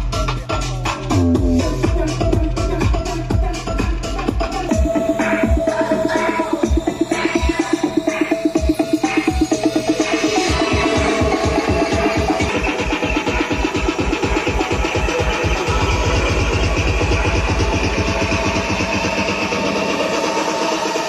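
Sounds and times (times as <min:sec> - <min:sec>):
electronic dance music: 0:00.0 - 0:21.0
steady kick drum beat: 0:00.0 - 0:21.0.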